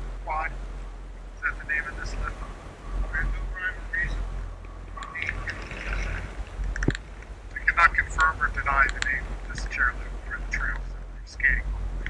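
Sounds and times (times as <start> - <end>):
low steady rumble: 0.0 - 12.0
muffled voices talking: 0.2 - 0.6, 1.4 - 11.7.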